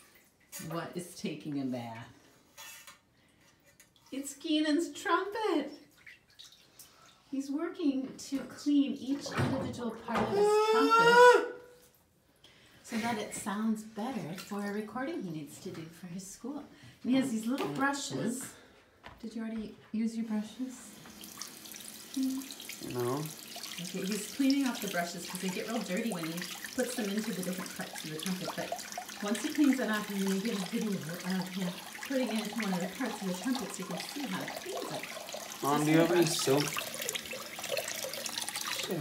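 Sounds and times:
faucet running: 20.8s - 39.0s
water splashing over brush: 22.1s - 39.0s.

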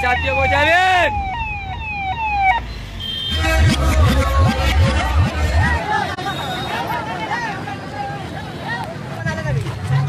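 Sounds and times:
electronic vehicle siren: 0.0s - 5.9s
crowd noise: 3.2s - 10.0s.

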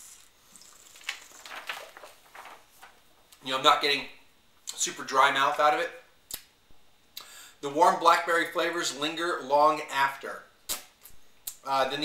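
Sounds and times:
short crackles: 0.7s - 3.4s
paper rustling: 0.8s - 3.4s.

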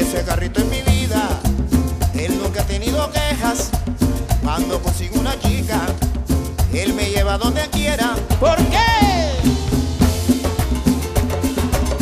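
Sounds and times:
live band instrumental music: 0.0s - 12.0s.

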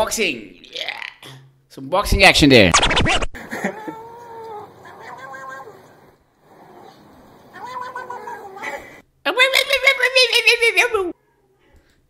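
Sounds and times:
cat meowing: 3.8s - 6.1s, 6.7s - 9.0s.

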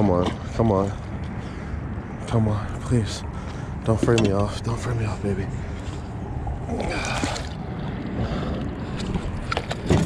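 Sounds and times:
low rumble of water and wind: 0.0s - 10.0s
water splashing and dripping: 6.7s - 8.5s.

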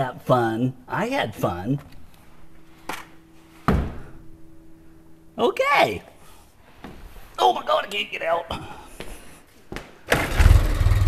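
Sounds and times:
faint steady hum: 0.0s - 10.1s
heavy dull thump: 3.6s - 4.2s.

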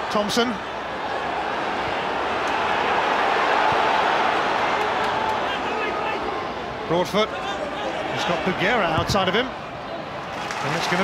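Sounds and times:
stadium crowd voices: 0.0s - 11.0s.

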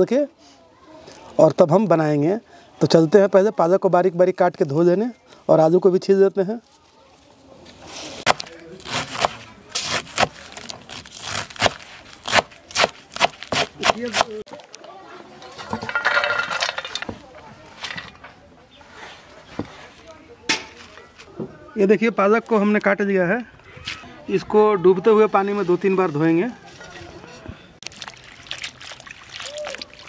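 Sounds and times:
leaves rustling: 6.6s - 18.0s
knife chopping on wooden board: 8.3s - 10.3s, 11.2s - 14.4s.

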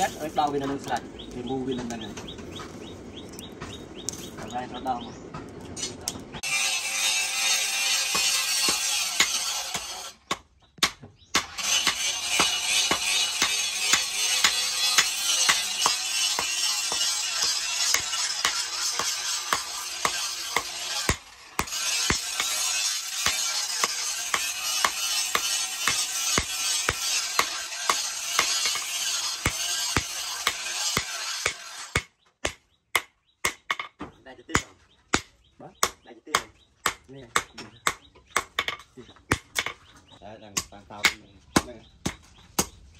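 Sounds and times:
hammer striking hot metal on anvil: 8.0s - 33.9s.

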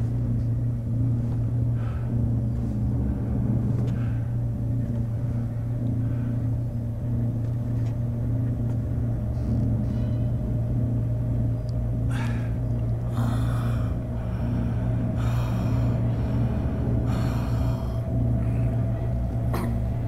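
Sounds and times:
low rumbling drone: 0.0s - 20.0s
wavering tone: 0.0s - 20.0s.

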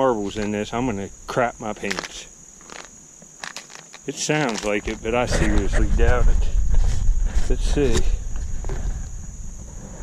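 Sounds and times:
microphone handling rumble: 4.4s - 9.8s
wind noise: 4.4s - 10.0s.

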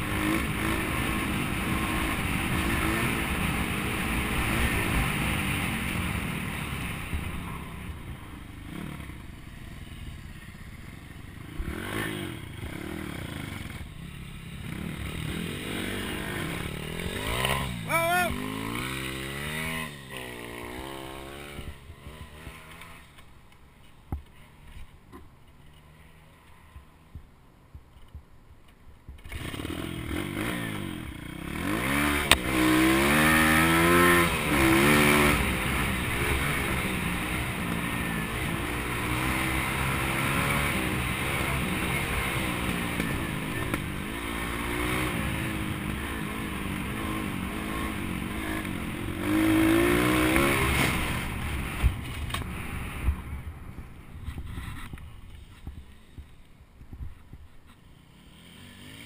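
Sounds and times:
small motorbike engine revving: 11.5s - 23.2s, 29.2s - 53.4s, 57.9s - 59.0s.

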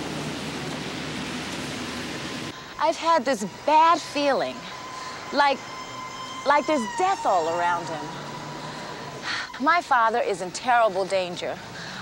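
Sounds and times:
low hum of engines: 0.0s - 2.6s, 3.5s - 9.3s
tyres on wet road: 0.0s - 9.6s, 10.4s - 12.0s.

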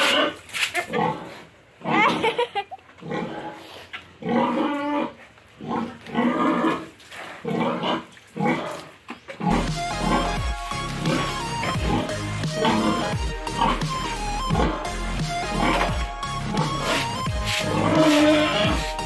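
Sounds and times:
pig squealing: 0.0s - 2.2s, 4.2s - 19.0s
background music with bass: 9.4s - 19.0s.

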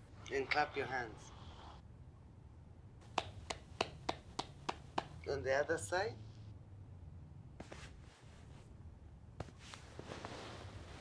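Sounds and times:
woman clapping hands: 3.1s - 5.2s.

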